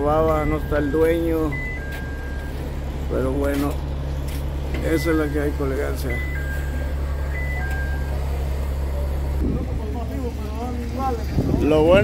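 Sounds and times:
man's voice: 0:00.0 - 0:01.7, 0:03.1 - 0:03.8, 0:04.8 - 0:06.4, 0:09.4 - 0:12.0
engine idling: 0:00.0 - 0:12.0.

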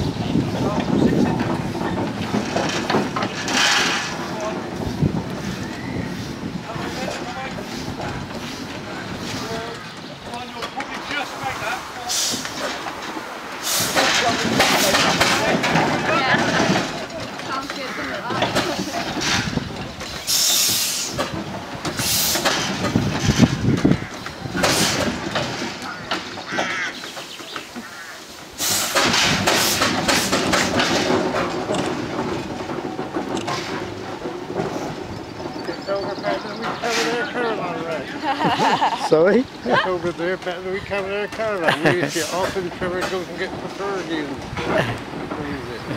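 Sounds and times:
people's voices: 0:00.0 - 0:27.8, 0:28.6 - 0:45.9
steam roller running: 0:00.0 - 0:45.9.

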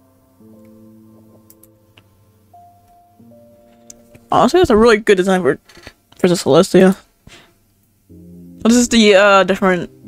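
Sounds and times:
soft synth chords: 0:00.0 - 0:04.5, 0:08.1 - 0:10.0.

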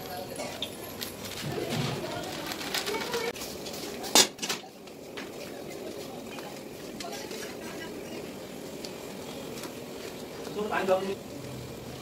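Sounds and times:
plastic bag crinkling: 0:00.9 - 0:03.4.

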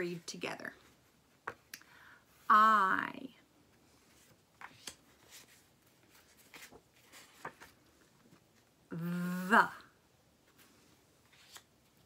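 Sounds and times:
paper flashcards rustling: 0:03.8 - 0:08.8, 0:10.5 - 0:12.0.

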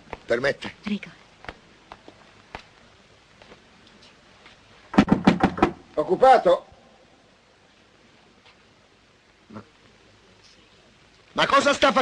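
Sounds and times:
knuckles knocking on wooden door: 0:05.0 - 0:05.8.

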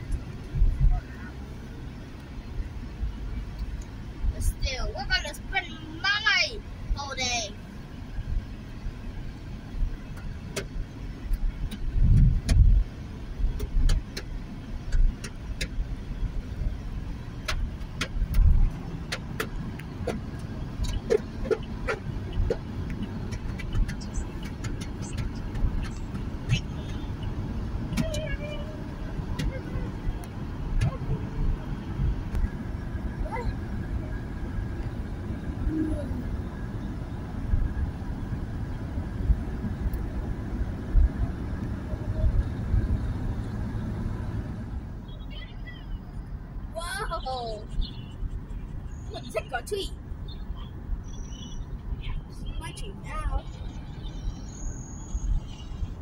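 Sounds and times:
car road noise rumble: 0:00.0 - 0:56.0.

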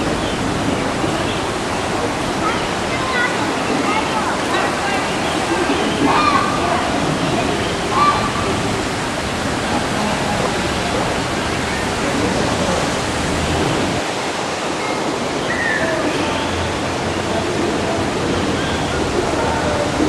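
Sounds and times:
water cascading in fountain: 0:00.0 - 0:20.0.

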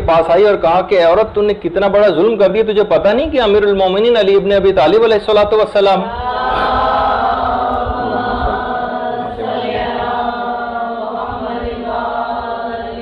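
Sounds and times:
voices chanting in unison: 0:06.1 - 0:13.0.

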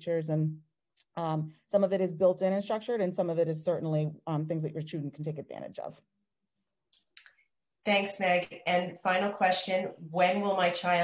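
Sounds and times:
woman speaking: 0:00.0 - 0:06.1, 0:07.9 - 0:11.0.

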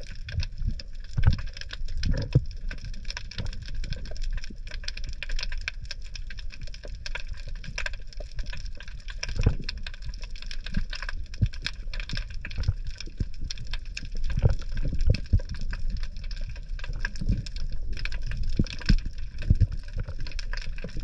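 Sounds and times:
low underwater rumble: 0:00.0 - 0:21.0
underwater reef crackling: 0:00.0 - 0:21.0
deep underwater thumps: 0:01.2 - 0:01.4, 0:02.1 - 0:02.6.

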